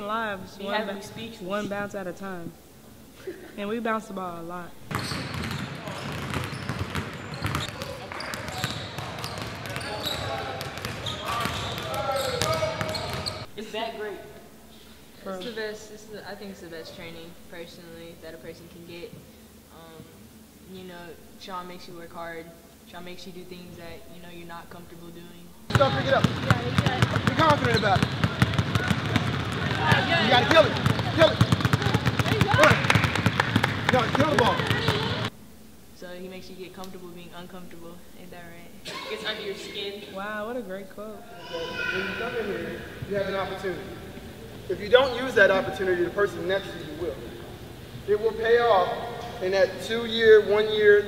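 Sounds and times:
basketballs bouncing on wooden floor: 0:04.9 - 0:13.5, 0:25.7 - 0:35.3
voices calling out: 0:05.0 - 0:13.5, 0:41.2 - 0:45.9.

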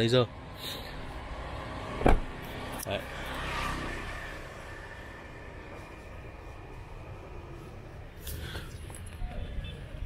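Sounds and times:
car door shutting: 0:02.0 - 0:02.4.

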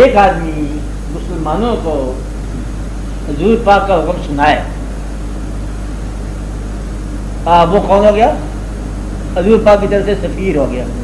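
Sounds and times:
low electrical hum: 0:00.0 - 0:11.0
steady hiss: 0:00.0 - 0:11.0.

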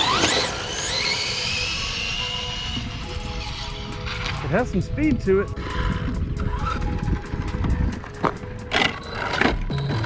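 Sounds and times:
toy car tyres crunching on asphalt: 0:00.0 - 0:02.0
light background music: 0:00.0 - 0:10.0.

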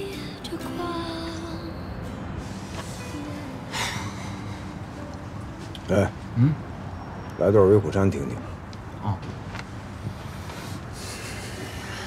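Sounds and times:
car cabin engine and road hum: 0:08.4 - 0:10.9.

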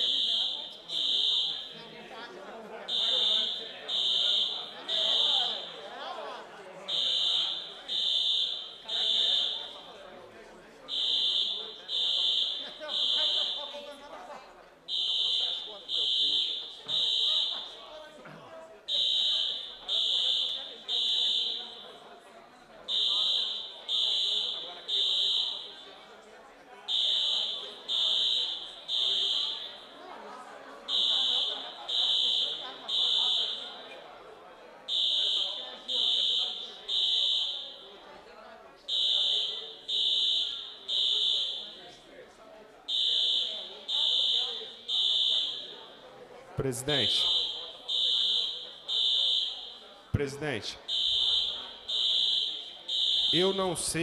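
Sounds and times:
fire alarm beeping: 0:00.0 - 0:01.9, 0:02.8 - 0:05.8, 0:06.8 - 0:10.0, 0:10.8 - 0:14.0, 0:14.9 - 0:17.9, 0:18.8 - 0:22.2, 0:22.8 - 0:26.1, 0:26.8 - 0:30.1, 0:30.8 - 0:34.1, 0:34.8 - 0:38.3, 0:38.9 - 0:42.1, 0:42.8 - 0:46.1, 0:46.8 - 0:50.0, 0:50.7 - 0:54.0
murmur of voices: 0:00.0 - 0:54.0.

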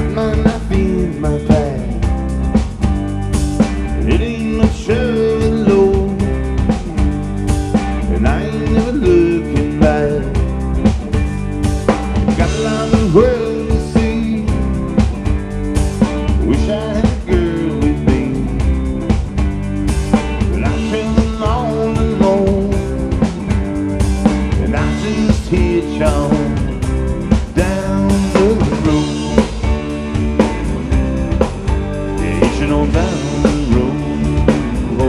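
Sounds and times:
drum kit beat: 0:00.0 - 0:35.0
electric guitars: 0:00.0 - 0:35.0.

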